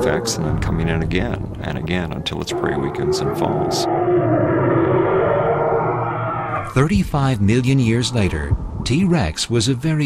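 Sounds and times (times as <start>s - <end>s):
dinosaur roar with wavering pitch: 2.2s - 6.8s.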